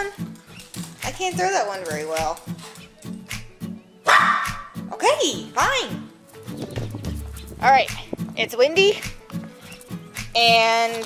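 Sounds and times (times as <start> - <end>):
background music with steady beat: 0.0 - 11.0
small dog barking: 4.0 - 4.8.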